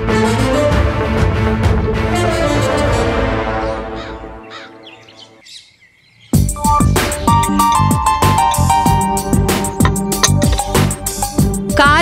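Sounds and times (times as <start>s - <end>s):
background music score: 0.0s - 5.0s, 6.4s - 12.0s
small bird chirps: 4.5s - 7.9s.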